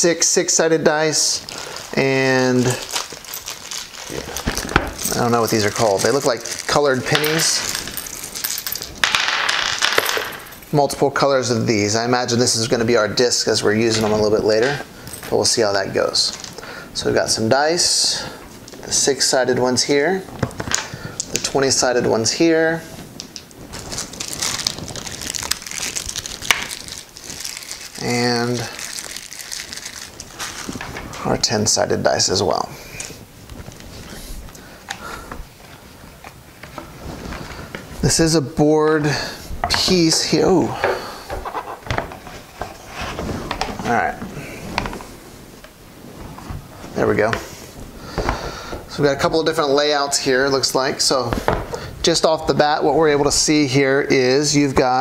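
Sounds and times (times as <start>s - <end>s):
plastic bag crinkling: 0.2s - 10.8s, 20.0s - 38.4s.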